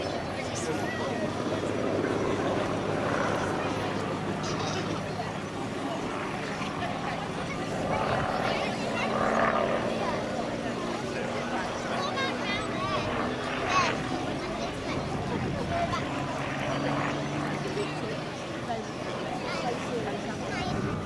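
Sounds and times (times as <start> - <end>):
people's voices: 0.0 - 21.0
propeller plane engine droning: 0.0 - 21.0.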